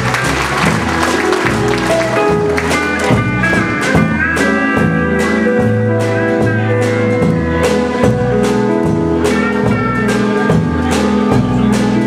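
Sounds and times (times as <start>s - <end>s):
blues band playing: 0.0s - 12.0s
drum kit: 0.0s - 12.0s
electric guitar: 0.0s - 12.0s
walking bass line: 0.0s - 12.0s.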